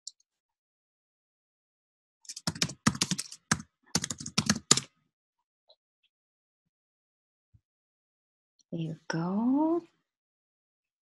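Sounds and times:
typing on computer keyboard: 0:02.3 - 0:04.9.

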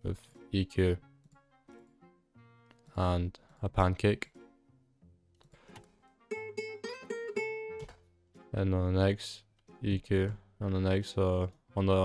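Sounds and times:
guitar riff with flanger: 0:06.3 - 0:08.0.

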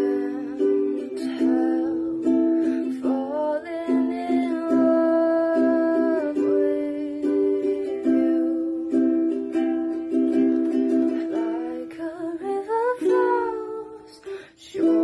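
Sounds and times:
ukulele strumming: 0:00.0 - 0:15.0
woman singing: 0:00.0 - 0:15.0.

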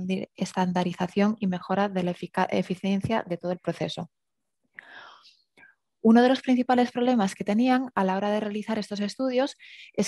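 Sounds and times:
person breathing in: 0:04.8 - 0:05.7.

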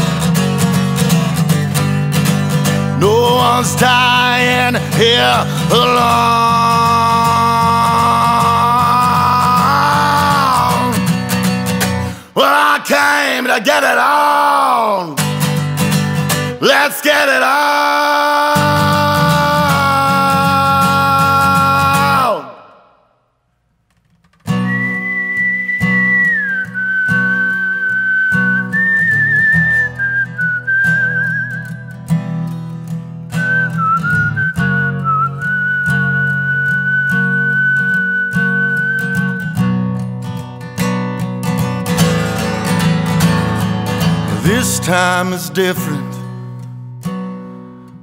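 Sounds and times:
strummed acoustic guitar: 0:00.0 - 0:22.8, 0:23.9 - 0:48.0
man whistling a melody: 0:03.3 - 0:12.2, 0:24.5 - 0:32.3, 0:33.3 - 0:40.1.

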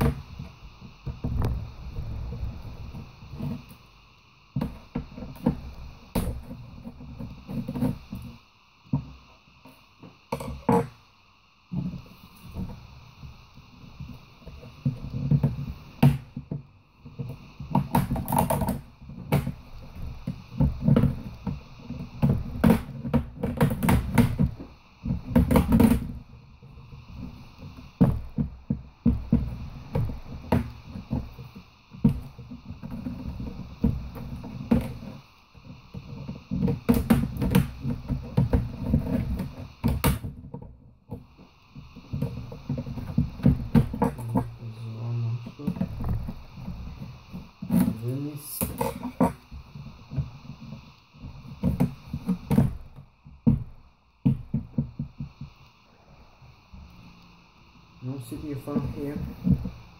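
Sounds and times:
low knocks and handling noise: 0:11.7 - 0:59.9.

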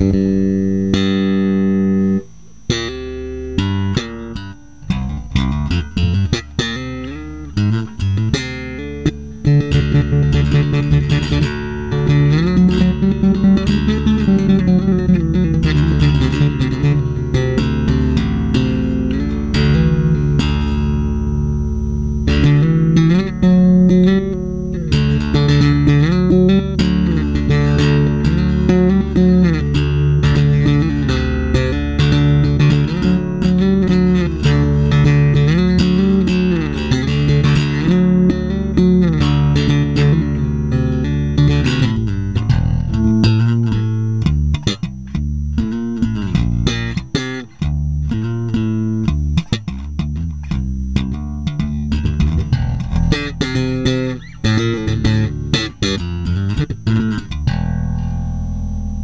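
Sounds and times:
electric bass guitar notes: 0:00.0 - 0:59.0.

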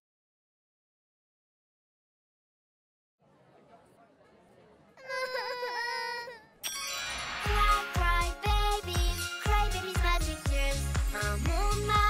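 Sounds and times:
cartoon babies crying: 0:05.0 - 0:06.6.

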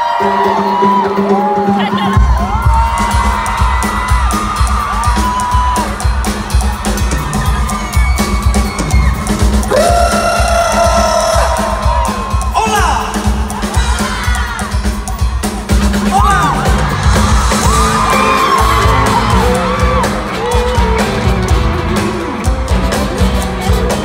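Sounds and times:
crowd screaming and cheering: 0:00.0 - 0:24.0
live band playing pop-rock: 0:00.0 - 0:24.0
kick-drum beat: 0:02.0 - 0:24.0.

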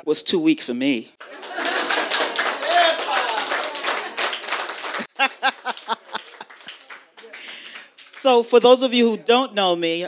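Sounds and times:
audience applauding: 0:01.2 - 0:08.6
woman laughing: 0:05.0 - 0:06.7.

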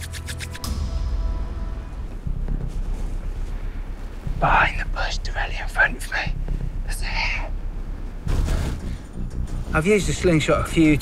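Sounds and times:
background music held note: 0:00.6 - 0:05.1.

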